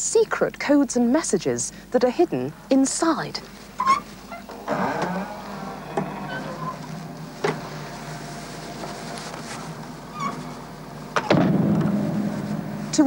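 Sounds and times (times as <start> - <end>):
low hum: 2.3 - 13.0.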